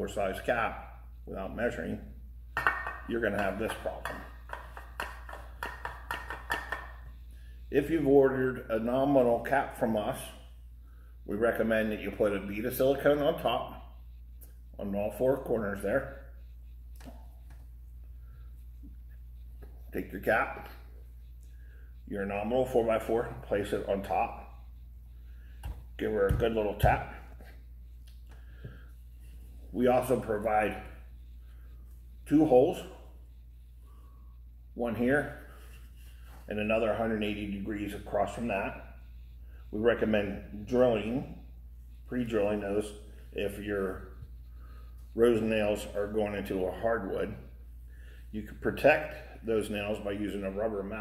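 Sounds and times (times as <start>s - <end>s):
steady low hum: 0.0s - 51.0s.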